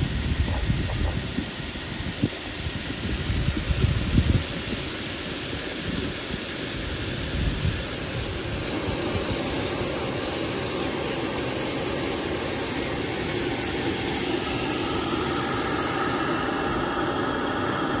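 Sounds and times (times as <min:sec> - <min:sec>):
faint machine hum: 0:00.0 - 0:18.0.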